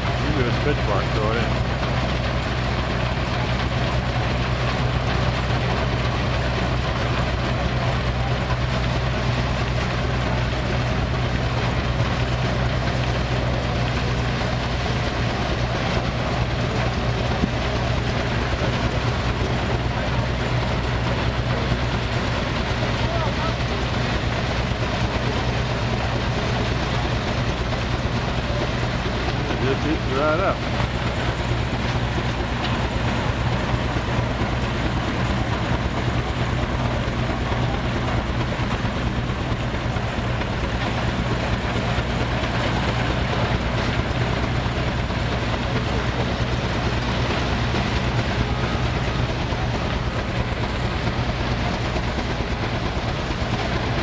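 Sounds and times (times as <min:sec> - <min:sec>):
threshing machine running: 0:00.0 - 0:54.0.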